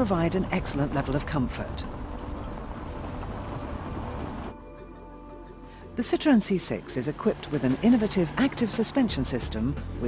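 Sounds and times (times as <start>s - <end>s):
tyre and road noise: 0.0s - 4.6s, 6.6s - 10.0s.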